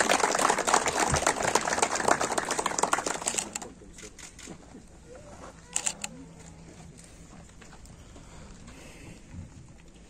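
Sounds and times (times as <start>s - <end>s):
small group clapping: 0.0s - 3.7s.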